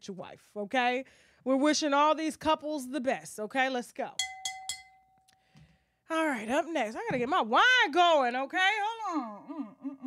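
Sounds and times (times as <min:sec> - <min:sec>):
fork tapping wine glass: 0:04.2 - 0:05.3.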